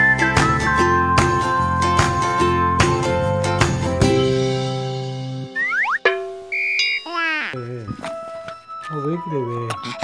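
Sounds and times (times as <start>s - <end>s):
descending cartoon boing: 5.6s - 7.3s.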